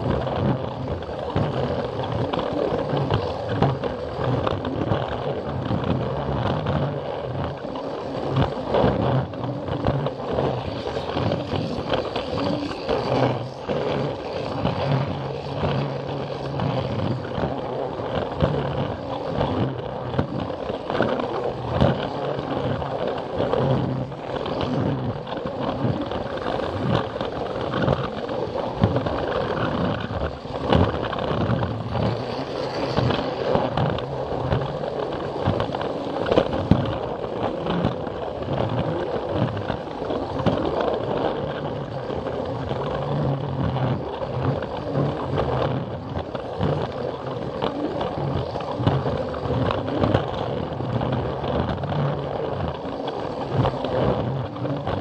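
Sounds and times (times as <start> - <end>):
plastic wheels clicking on track: 0.0 - 55.0.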